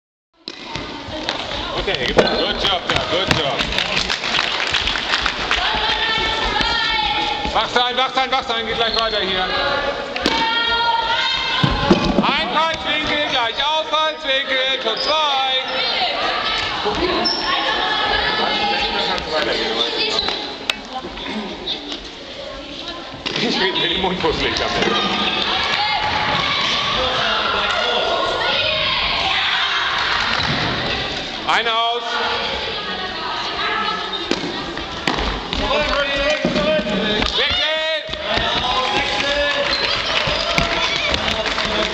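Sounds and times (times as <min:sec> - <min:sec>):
voices talking and calling echoing: 0:00.4 - 0:04.3, 0:05.2 - 0:41.9.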